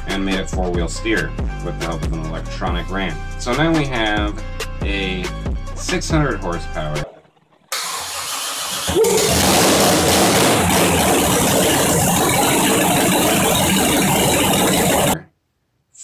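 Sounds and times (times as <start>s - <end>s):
engine cranking and starting: 7.7s - 15.2s.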